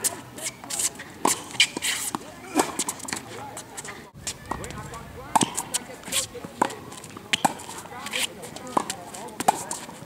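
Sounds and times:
ball bouncing: 4.2 - 7.7
racquet hitting tennis ball: 4.2 - 9.8.

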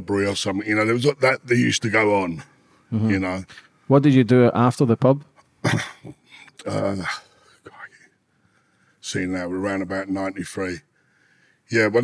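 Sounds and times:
man speaking: 0.0 - 8.1, 9.0 - 10.8, 11.7 - 12.0
faint murmur or breath: 6.2 - 9.0, 10.9 - 11.7.

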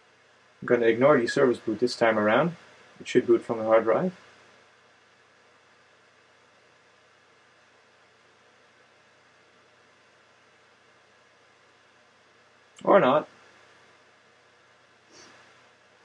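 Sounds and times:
room tone hiss: 0.0 - 16.0
person speaking: 0.6 - 4.2, 12.8 - 13.2.

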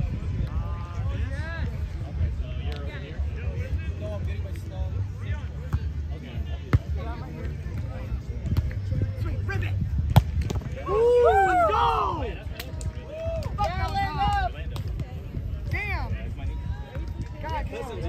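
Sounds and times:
faint chatter: 0.0 - 18.0
loud shouting voices: 10.8 - 12.4.

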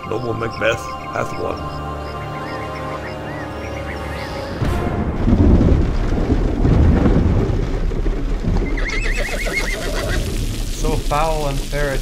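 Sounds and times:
low rumble: 3.6 - 9.0
horse whinnying: 8.6 - 10.2.

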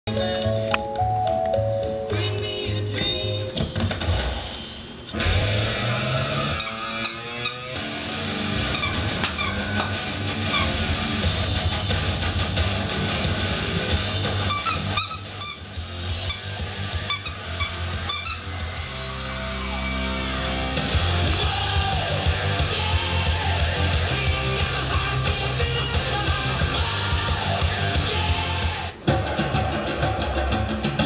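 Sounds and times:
music: 0.1 - 31.0
squeaky dog toy squeaking: 6.6 - 7.8, 8.7 - 10.8, 14.4 - 18.6.

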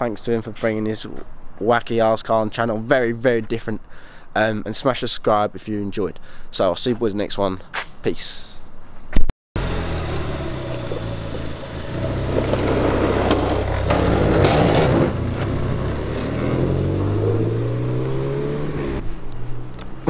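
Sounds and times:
car engine driving past: 9.6 - 20.0.

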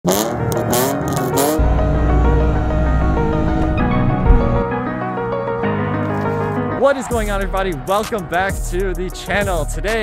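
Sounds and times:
car engine revving: 0.1 - 5.0
background music with low beat: 0.4 - 5.1, 6.8 - 10.0.

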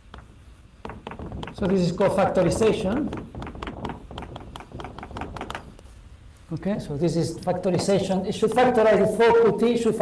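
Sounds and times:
chalk tapping and scratching: 0.0 - 6.0.

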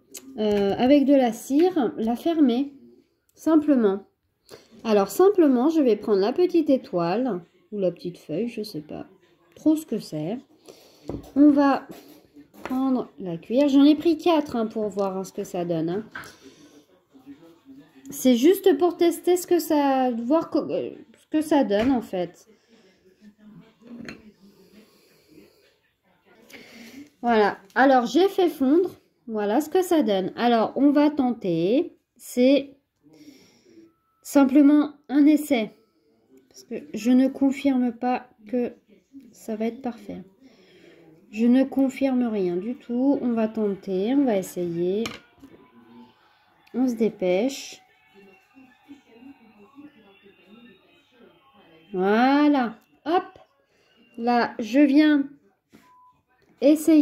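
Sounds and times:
faint voices talking: 0.0 - 29.8, 35.3 - 57.0
woman breathing: 10.6 - 11.2, 40.4 - 41.2.

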